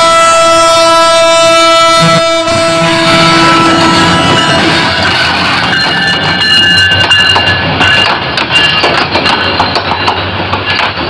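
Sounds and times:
train wheels rushing on rails: 0.0 - 11.0.

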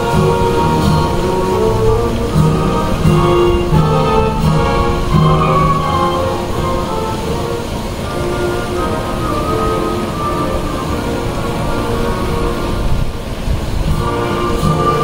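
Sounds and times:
steady rushing noise: 0.0 - 15.0.

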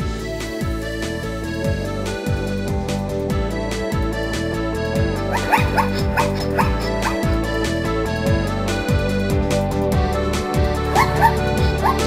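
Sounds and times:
electronic background music: 0.0 - 12.0
zebra barking: 5.2 - 7.4, 10.9 - 12.0.

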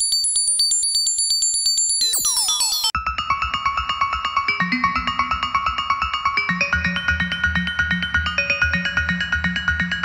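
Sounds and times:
high steady synth tones: 2.0 - 3.0.

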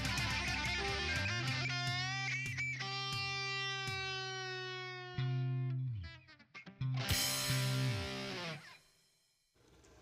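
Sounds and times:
guitar music: 0.0 - 8.8.

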